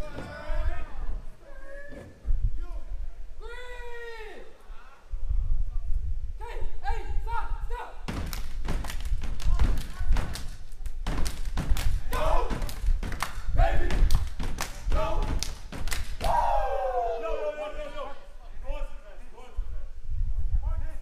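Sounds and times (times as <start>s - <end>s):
claps and body slaps: 8.1s - 16.5s
heavy stomping thumps: 8.1s - 16.5s
people shouting chants: 12.1s - 12.7s, 16.2s - 18.2s.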